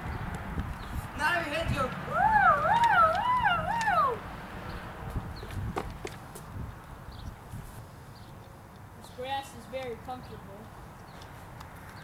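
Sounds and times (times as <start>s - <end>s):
high wavering vocal wail: 2.0s - 4.3s.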